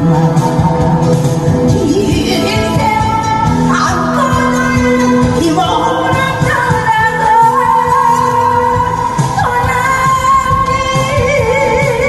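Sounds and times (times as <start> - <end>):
backing music with steady beat: 0.0 - 12.0
woman singing into microphone: 0.0 - 12.0.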